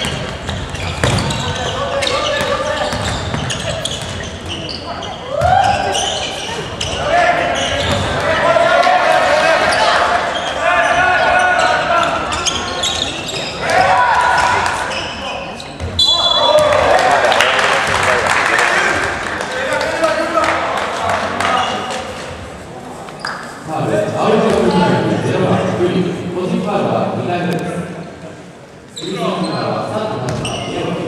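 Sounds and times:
shrill whistle blast: 16.0s - 16.6s.

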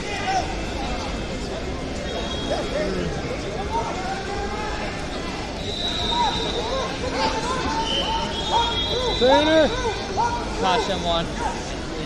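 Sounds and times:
people talking in a hall: 0.0s - 12.0s.

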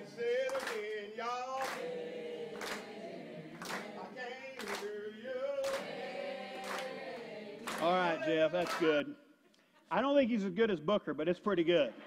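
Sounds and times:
man singing a cappella: 0.0s - 1.8s, 4.0s - 5.8s, 7.7s - 9.1s
diners clapping along: 0.0s - 9.0s.

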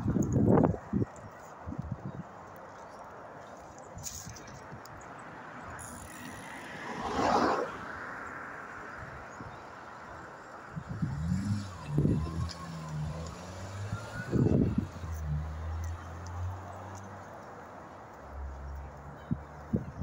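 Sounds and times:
vehicle passing: 5.4s - 19.2s
low engine hum: 10.8s - 17.3s.

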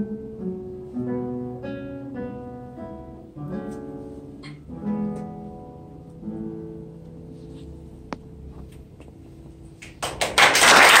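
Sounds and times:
audience applause: 9.8s - 11.0s.

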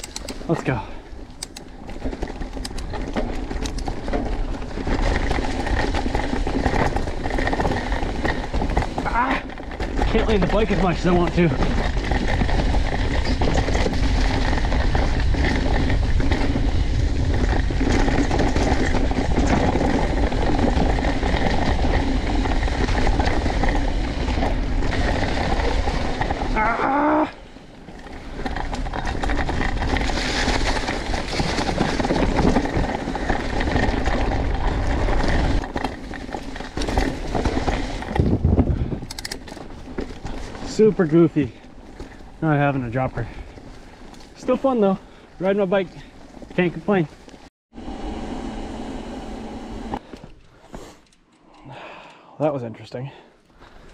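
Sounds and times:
bike tyres rolling on dirt: 0.0s - 53.9s
wind buffeting microphone: 38.0s - 39.4s.

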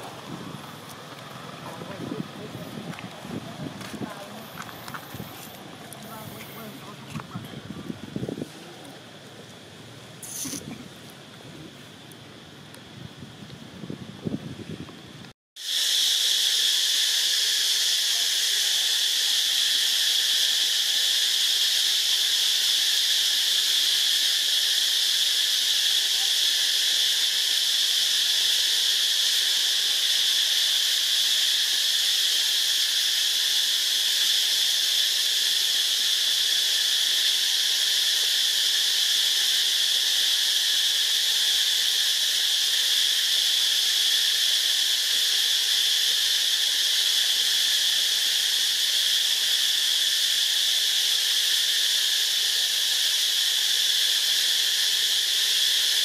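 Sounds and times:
chorus of insects: 0.0s - 56.0s.

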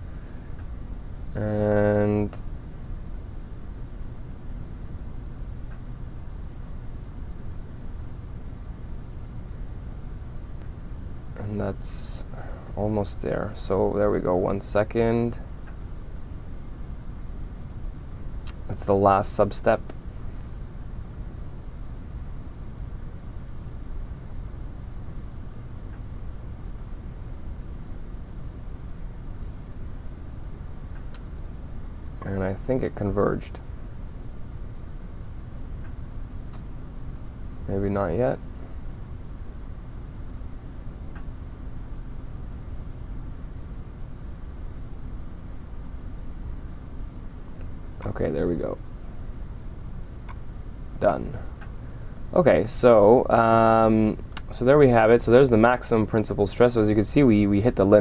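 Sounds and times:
background hiss: 0.0s - 58.0s
background hum: 0.0s - 58.0s
faint click: 51.6s - 52.3s.

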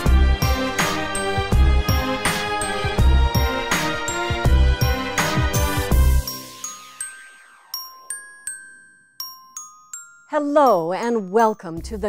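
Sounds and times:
intro music chord with deep bass: 0.0s - 6.5s
bright bell-like pings: 6.2s - 11.7s.

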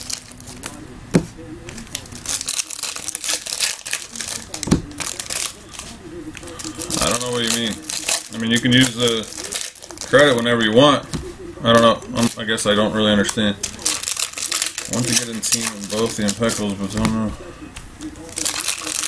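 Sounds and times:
foil wrappers crinkling and tearing: 0.0s - 0.8s, 1.6s - 19.0s
person speaking: 0.0s - 19.0s.

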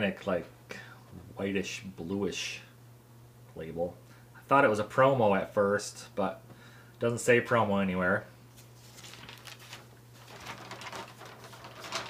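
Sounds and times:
steady low hum: 0.0s - 12.0s
rustling of record sleeve: 8.5s - 12.0s.

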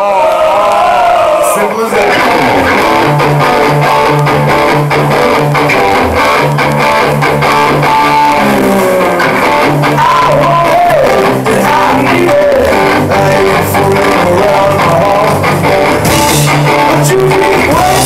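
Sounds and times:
electric guitar: 0.0s - 18.0s
bass guitar line: 0.8s - 18.0s
drums: 2.0s - 18.0s
man singing whoa: 9.8s - 18.0s.

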